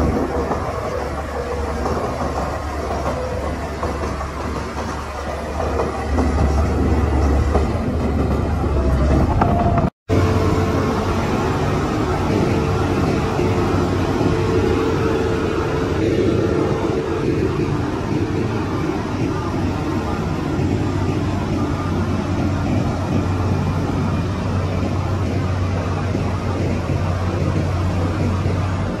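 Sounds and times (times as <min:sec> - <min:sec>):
heavy diesel machinery drone: 0:00.0 - 0:29.0.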